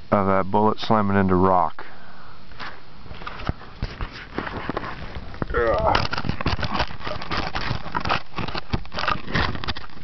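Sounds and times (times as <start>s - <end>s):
faint hiss: 0.0s - 5.8s.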